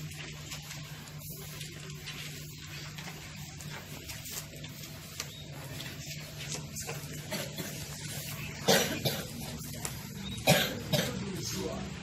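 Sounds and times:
person coughing: 8.6s - 9.4s, 10.4s - 11.3s.

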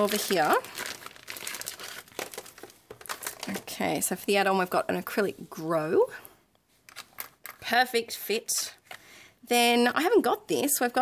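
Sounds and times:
plastic bag crinkling: 0.0s - 4.1s.

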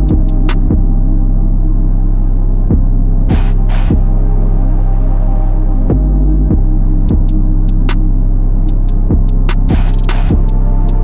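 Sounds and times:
sustained bass: 0.0s - 11.0s.

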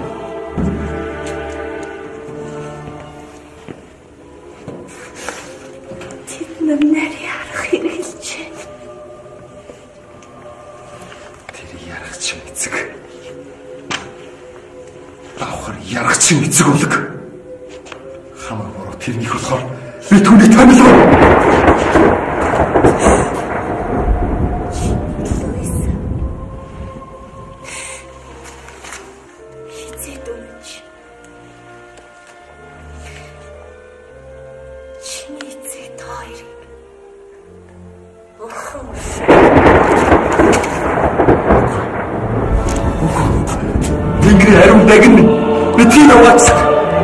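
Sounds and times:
hissing rain-like wash: 19.6s - 32.3s, 36.6s - 47.0s
thunder rumbling: 20.1s - 27.9s, 38.7s - 47.0s.

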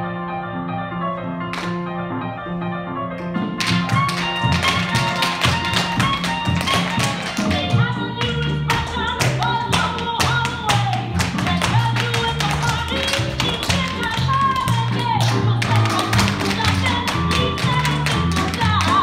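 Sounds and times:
tap shoes on wooden floor: 3.2s - 19.0s.

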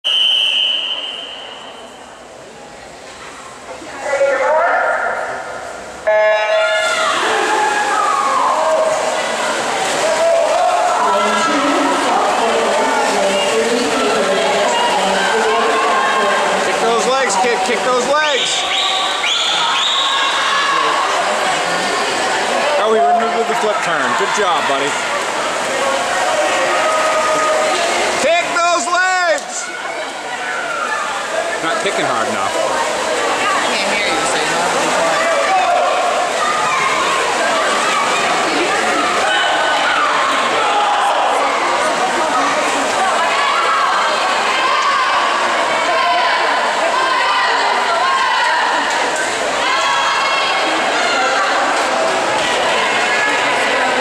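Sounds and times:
swimmers splashing: 0.0s - 54.0s
spectators cheering and shouting: 4.0s - 54.0s.

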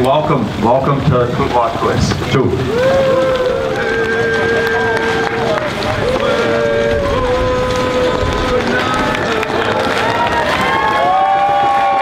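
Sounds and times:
crowd voices holding long calls: 1.8s - 12.0s.

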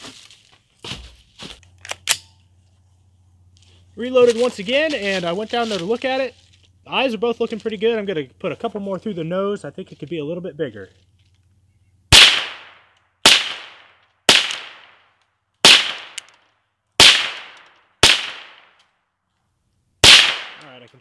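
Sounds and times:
rifle shots echoing: 12.1s - 16.4s, 17.0s - 18.8s, 20.0s - 20.8s.

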